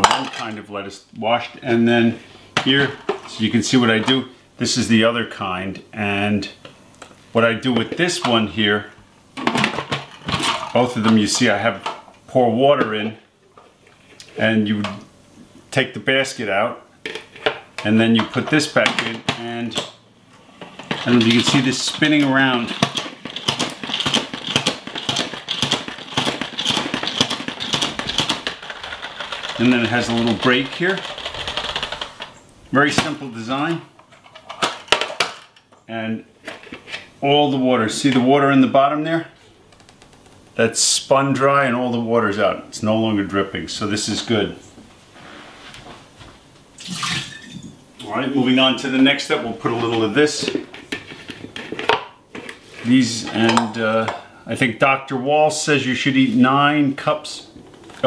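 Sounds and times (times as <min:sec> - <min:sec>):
salad spinner clicking: 0:22.9 - 0:32.3.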